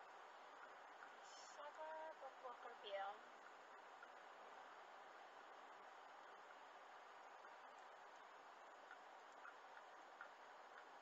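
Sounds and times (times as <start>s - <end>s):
faint steady hiss: 0.0s - 11.0s
faint ticks: 3.4s - 4.4s, 7.3s - 11.0s.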